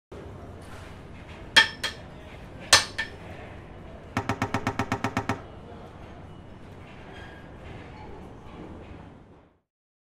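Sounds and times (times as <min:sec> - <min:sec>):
hammer clanging on metal: 0:01.6 - 0:02.1, 0:02.7 - 0:03.2.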